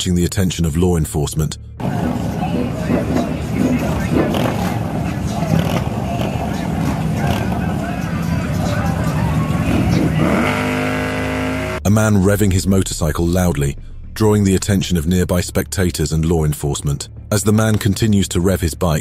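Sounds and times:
crowd chatter: 1.8s - 11.6s
motorcycle engines running: 1.8s - 11.8s
motorcycle engine revving high: 1.8s - 11.9s.

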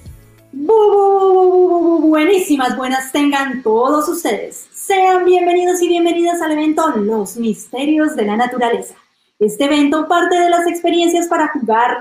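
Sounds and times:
intro music: 0.0s - 4.9s.

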